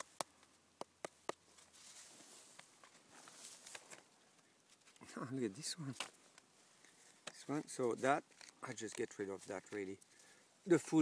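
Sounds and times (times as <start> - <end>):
soft rustling and scraping: 1.5 - 10.4.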